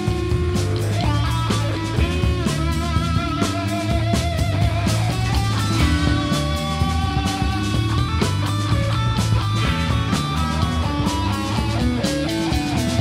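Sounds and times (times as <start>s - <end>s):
bass guitar: 0.0s - 13.0s
drum kit: 0.0s - 13.0s
electric guitars: 0.0s - 13.0s.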